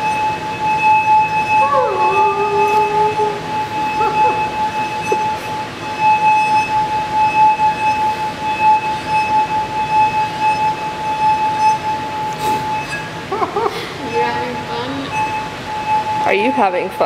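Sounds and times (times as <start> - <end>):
glass bowl rim ringing tone: 0.0 - 17.0.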